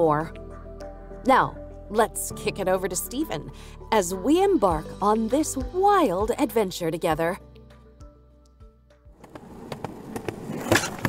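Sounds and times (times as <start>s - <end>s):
skateboard clacks: 9.2s - 11.0s
skateboard wheels rolling: 9.2s - 11.0s.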